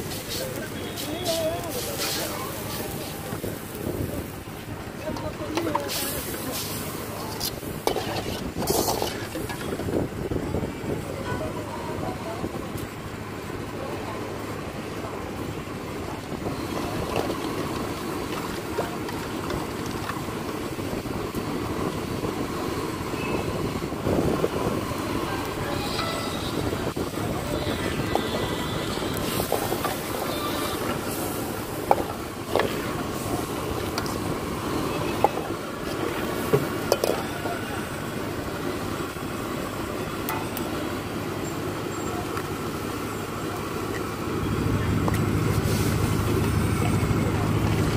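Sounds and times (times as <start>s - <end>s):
ladle clanking on wok: 5.1s - 9.9s
soup boiling in wok: 5.6s - 10.4s, 15.3s - 25.3s, 29.1s - 47.9s.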